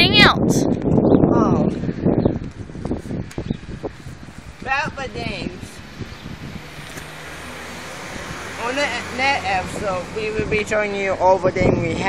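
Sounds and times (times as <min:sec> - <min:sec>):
low motor hum: 0:03.8 - 0:10.6.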